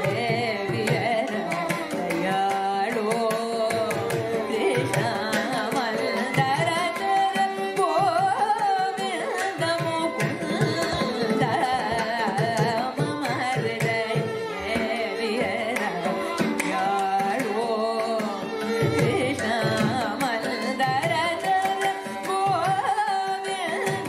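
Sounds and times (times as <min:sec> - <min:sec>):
violins playing melody: 0:00.0 - 0:24.0
woman singing: 0:00.0 - 0:24.0.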